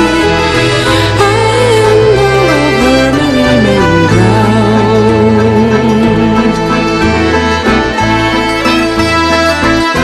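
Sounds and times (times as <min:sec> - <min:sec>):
accordion: 0:00.0 - 0:10.0
bass line: 0:00.0 - 0:10.0
fiddle: 0:00.0 - 0:10.0
strummed guitar: 0:00.0 - 0:10.0.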